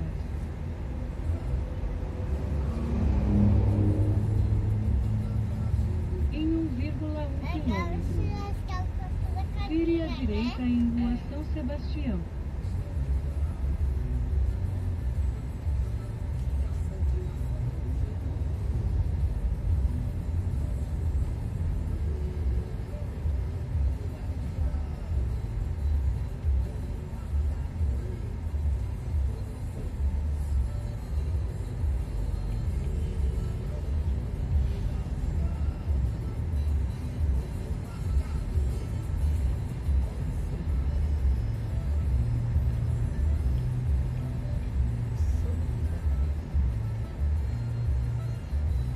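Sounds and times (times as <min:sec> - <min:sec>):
car cabin road rumble: 0:00.0 - 0:48.9.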